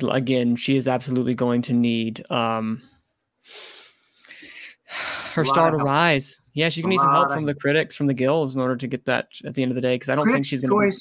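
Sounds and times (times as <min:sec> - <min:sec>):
person breathing: 0:03.4 - 0:05.5.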